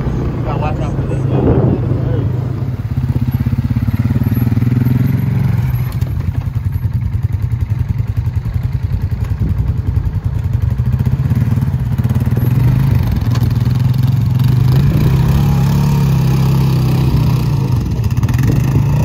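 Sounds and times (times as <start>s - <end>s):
atv engine running: 0.0s - 19.0s.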